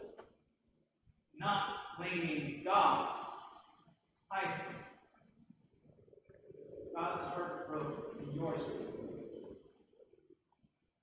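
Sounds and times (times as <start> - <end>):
man's voice: 7.0 - 9.0.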